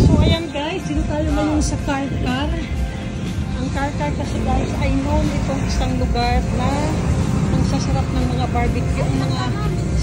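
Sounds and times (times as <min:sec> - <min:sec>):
indistinct talking: 0:00.0 - 0:10.0
road traffic rumble: 0:00.0 - 0:10.0.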